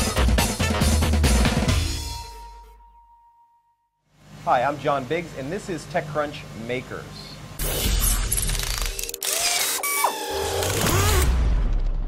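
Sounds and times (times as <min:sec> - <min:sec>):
music: 0:00.0 - 0:04.0, 0:07.6 - 0:12.0
mechanical ratcheting and clicking: 0:08.2 - 0:11.3.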